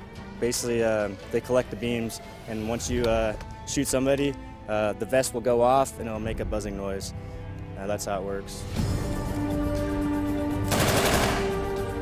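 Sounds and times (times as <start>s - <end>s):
background music with held notes: 0.0s - 12.0s
machine gun burst: 10.7s - 11.7s.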